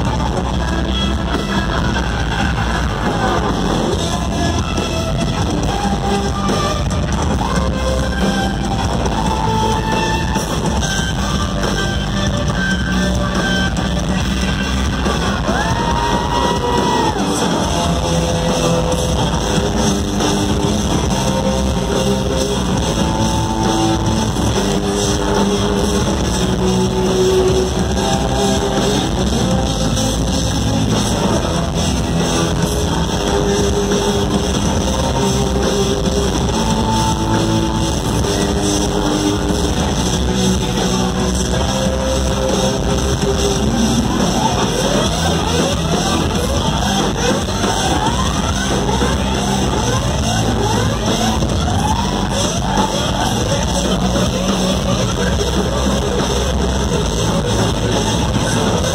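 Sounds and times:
bass: 0.0s - 58.9s
drums: 0.0s - 58.9s.

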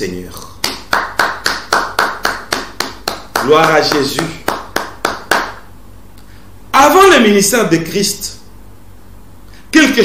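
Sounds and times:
man clapping hands: 0.4s - 5.7s.

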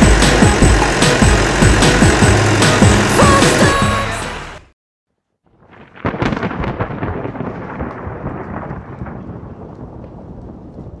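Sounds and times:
thunder crack and rumble: 5.5s - 11.0s.

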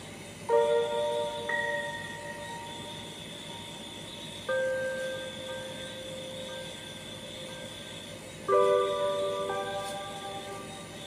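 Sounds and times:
soft bell-like chords: 0.0s - 11.0s.

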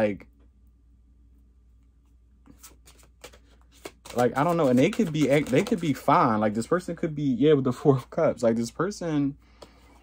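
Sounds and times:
cards flicking and tapping: 2.4s - 6.6s.

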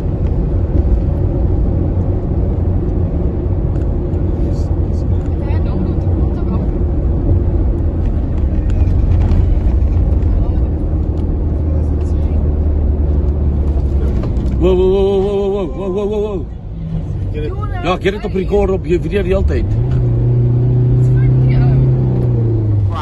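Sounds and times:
engine and road rumble: 0.0s - 23.0s.

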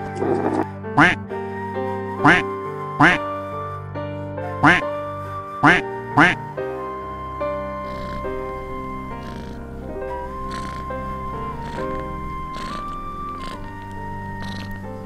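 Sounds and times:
background music with held notes: 0.0s - 15.0s
duck quacking: 1.0s - 1.2s, 2.2s - 2.4s, 3.0s - 3.2s, 4.6s - 4.8s, 5.6s - 6.4s.

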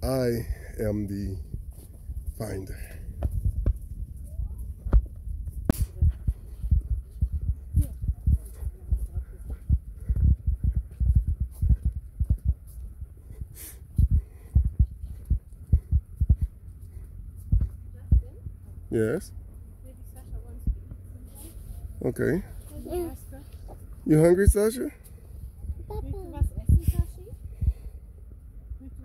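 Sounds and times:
wind and handling thumps on mic: 1.4s - 18.7s, 24.5s - 28.0s.

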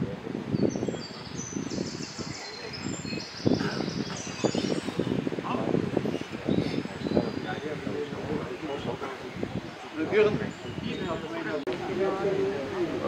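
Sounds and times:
high birdsong: 0.0s - 12.9s
people talking: 2.2s - 13.0s.

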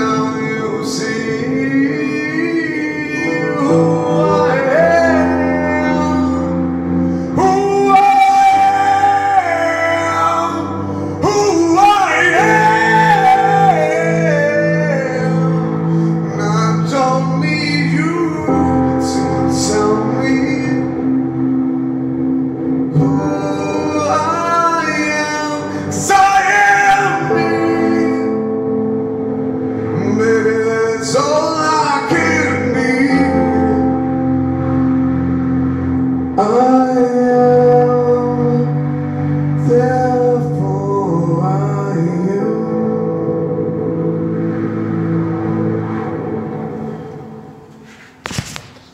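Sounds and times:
buzzing synthesizer chord: 0.0s - 48.0s.

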